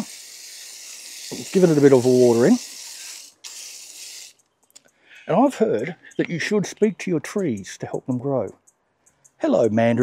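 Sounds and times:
hose water spraying onto soil: 0:00.0 - 0:04.4
faint clicks: 0:04.3 - 0:05.0, 0:07.4 - 0:09.4.

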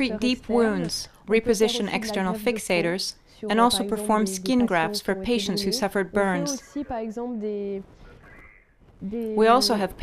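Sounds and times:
woman speaking: 0:00.0 - 0:07.9, 0:09.0 - 0:10.0.

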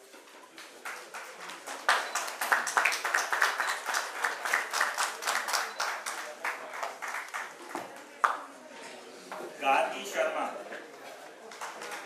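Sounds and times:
audience applause: 0:00.8 - 0:07.7.

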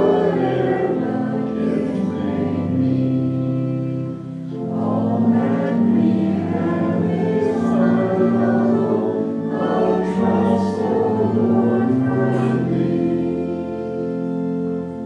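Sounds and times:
congregation singing a hymn: 0:00.0 - 0:15.0
organ accompaniment: 0:00.0 - 0:15.0.

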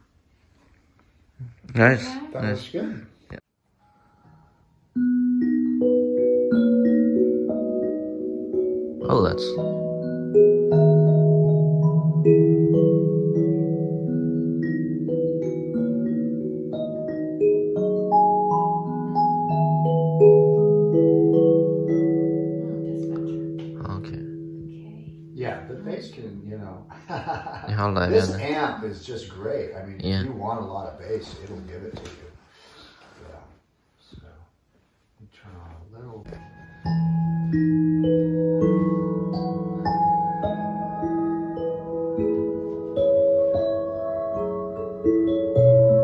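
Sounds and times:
plucked mbira chord ringing: 0:05.0 - 0:26.4, 0:36.6 - 0:46.0.

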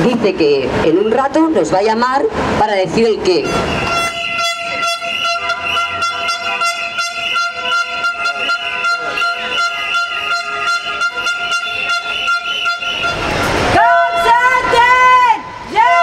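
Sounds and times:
horns blaring: 0:03.1 - 0:16.0.

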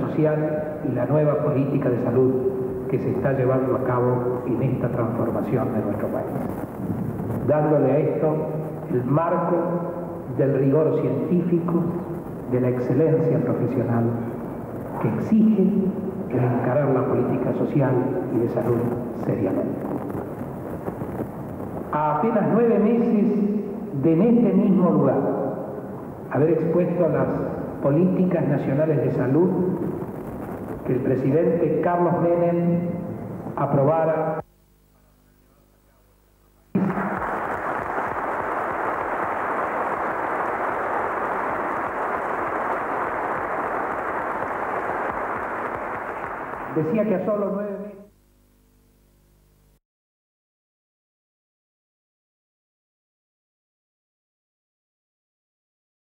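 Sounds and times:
audience applauding: 0:36.8 - 0:47.1.

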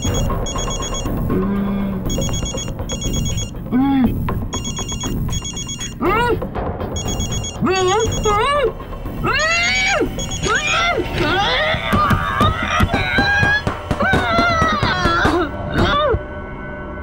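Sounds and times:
mobile phone ringing: 0:00.0 - 0:01.3, 0:02.0 - 0:03.6, 0:04.5 - 0:06.1, 0:06.9 - 0:08.4, 0:10.2 - 0:10.8
woman moaning: 0:01.3 - 0:02.1, 0:03.7 - 0:04.2.

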